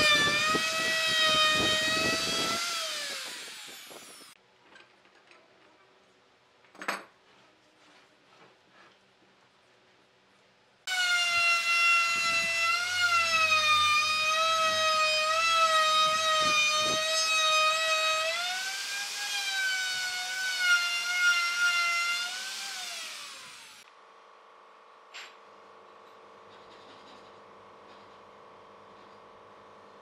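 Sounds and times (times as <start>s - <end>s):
electric router whining: 0.0s - 4.4s, 10.9s - 17.5s, 18.1s - 23.8s.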